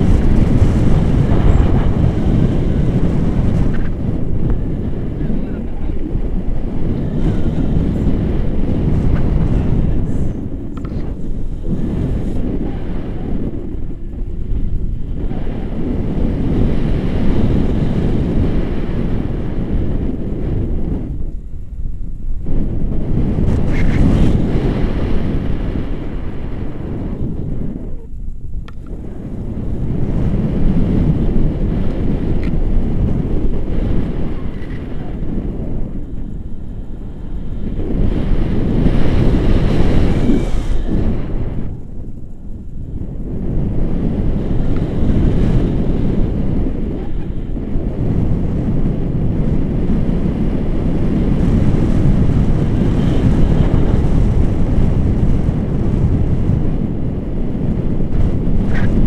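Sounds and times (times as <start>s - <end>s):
wind buffeting microphone: 0.0s - 59.0s.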